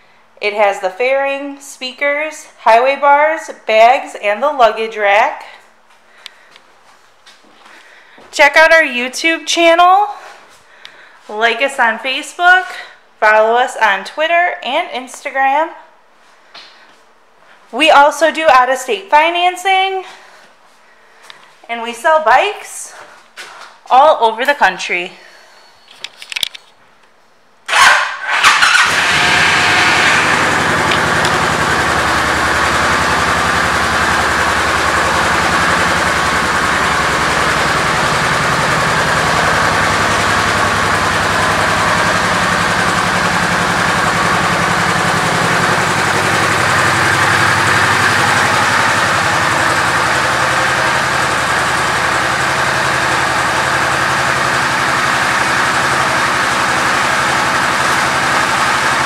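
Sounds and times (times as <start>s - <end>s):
motorcycle starter cranking: 27.7s - 59.0s
motorcycle engine idling: 28.4s - 59.0s.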